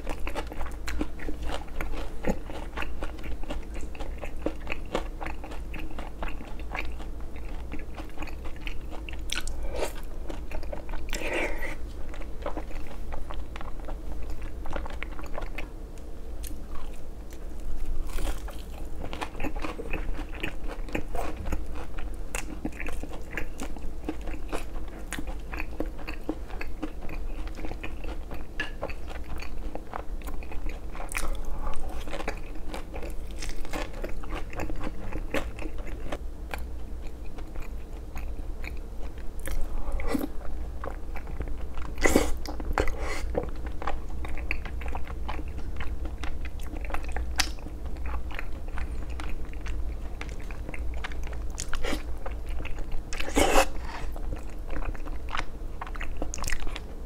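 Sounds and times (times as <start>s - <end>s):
crunching fried food: 16.4s - 57.0s.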